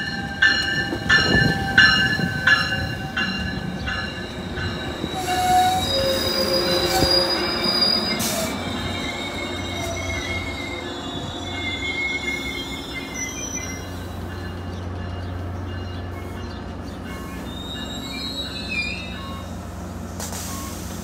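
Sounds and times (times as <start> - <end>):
low train rumble: 0.0 - 21.0
train wheels squealing on rails: 0.0 - 21.0.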